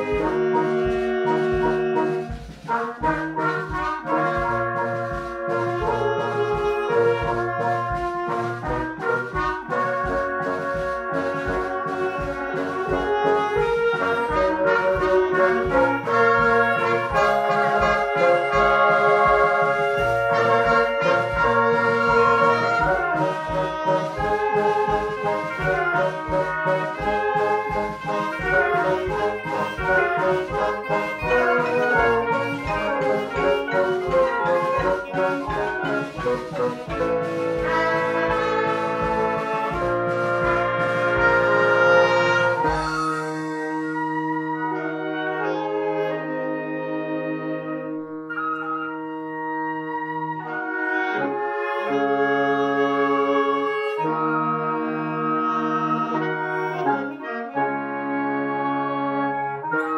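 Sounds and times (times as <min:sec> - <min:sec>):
concert band playing: 0:00.0 - 0:59.9.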